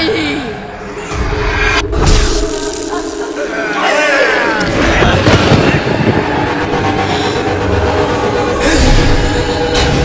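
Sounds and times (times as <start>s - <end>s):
loud rumbling drone: 4.5s - 10.0s.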